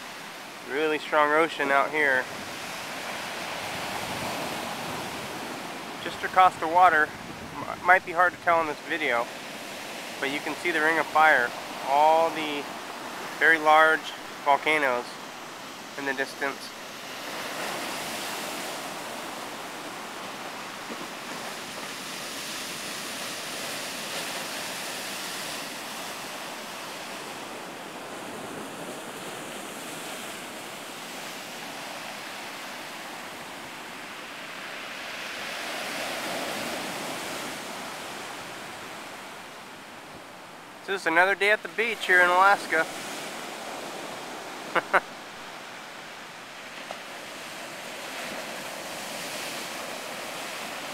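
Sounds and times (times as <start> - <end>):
waves breaking on gravel beach: 0.1 - 39.1, 41.1 - 44.9, 45.6 - 50.9.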